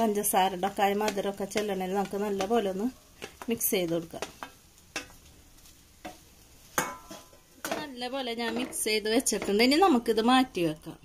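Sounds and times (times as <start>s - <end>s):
spatula scraping frying pan: 0.5s - 9.8s.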